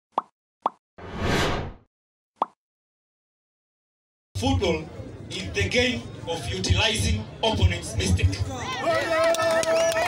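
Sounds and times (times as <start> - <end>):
rising whoosh: 1.0 - 1.8.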